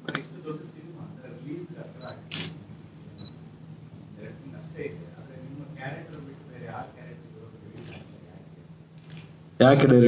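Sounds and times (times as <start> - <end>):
steady low hum: 0.0 - 10.0
camera shutter click: 2.3 - 2.6.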